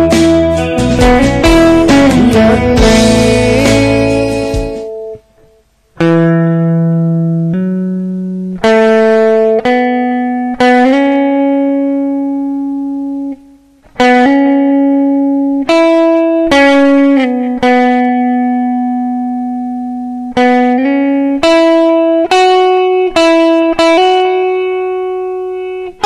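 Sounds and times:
electric guitar note: 0:00.0 - 0:26.0.

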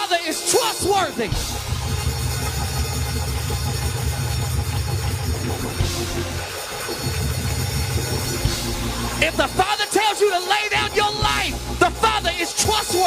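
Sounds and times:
person preaching: 0:00.0 - 0:01.4, 0:09.2 - 0:13.0
sustained deep bass notes: 0:01.2 - 0:09.7, 0:10.8 - 0:13.0.

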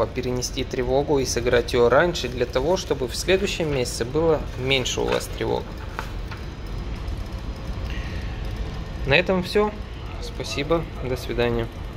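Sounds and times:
machinery rumble: 0:00.0 - 0:11.9.

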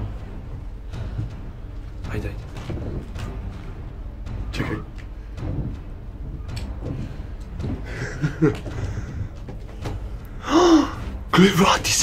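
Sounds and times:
footsteps on wooden stairs: 0:00.1 - 0:04.0, 0:04.9 - 0:10.4.

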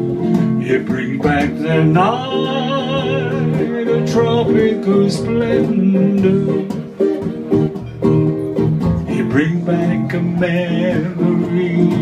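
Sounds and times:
guitar chords strummed: 0:00.0 - 0:12.0.

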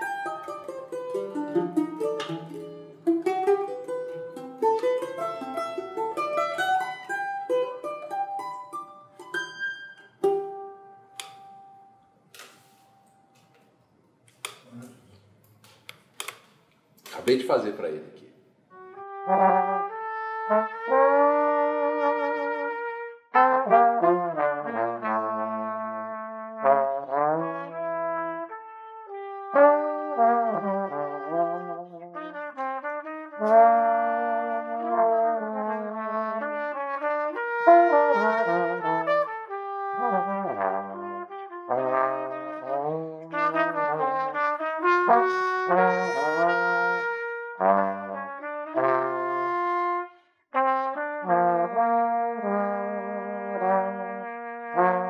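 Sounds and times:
trombone playing: 0:00.0 - 0:08.2, 0:18.7 - 0:55.0
trumpet melody: 0:00.0 - 0:13.5, 0:18.7 - 0:55.0.

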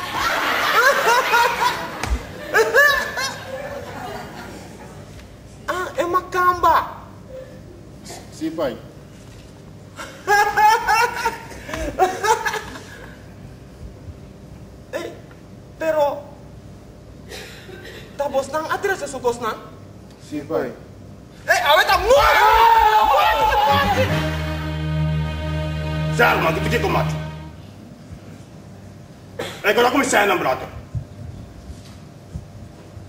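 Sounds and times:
audience laughter: 0:00.0 - 0:05.0.

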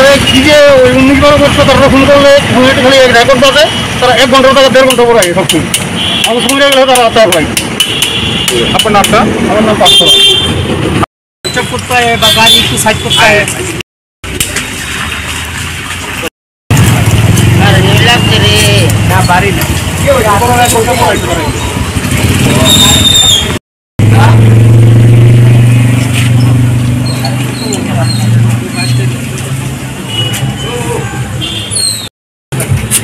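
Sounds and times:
people talking: 0:00.0 - 0:05.7, 0:06.3 - 0:07.5, 0:08.5 - 0:10.3, 0:11.5 - 0:13.6, 0:17.6 - 0:21.6, 0:24.1 - 0:24.5, 0:26.2 - 0:29.5
street traffic: 0:00.0 - 0:33.0
vehicle horn: 0:09.9 - 0:10.7, 0:30.1 - 0:30.8.

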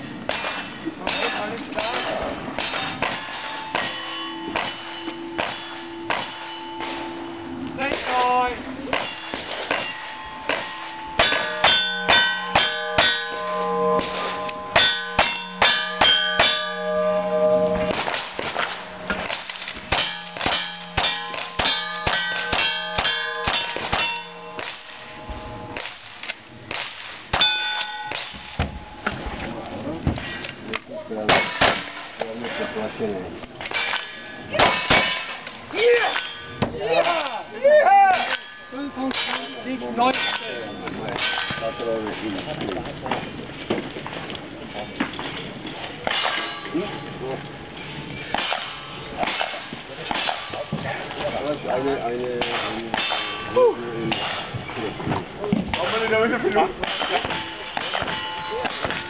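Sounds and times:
steel targets clanging: 0:00.0 - 0:29.7, 0:31.1 - 0:43.4, 0:44.5 - 0:59.0
gunshots: 0:17.8 - 0:24.9.

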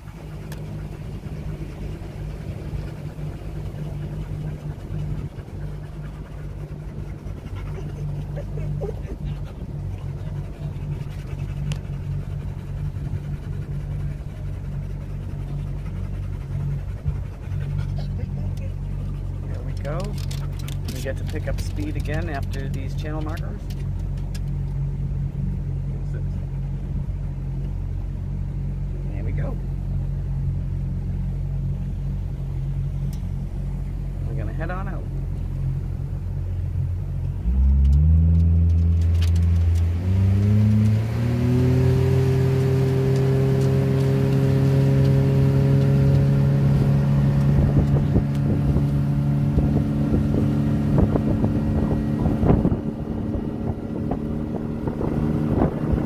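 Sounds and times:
water rushing past: 0:00.0 - 0:17.8, 0:38.6 - 0:56.0
motorboat engine: 0:00.0 - 0:56.0.

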